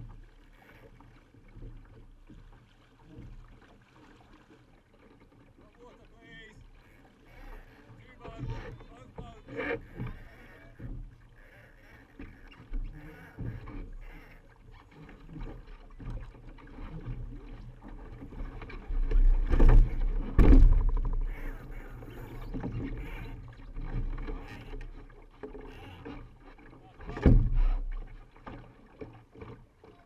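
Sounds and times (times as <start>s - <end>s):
rush of wind and water: 0.0s - 30.0s
water splashing against boat hull: 0.0s - 30.0s
short knocks: 19.4s - 21.8s.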